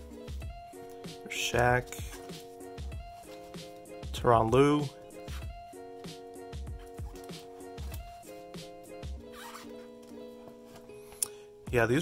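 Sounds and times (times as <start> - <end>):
soft music with low beat: 0.0 - 12.0.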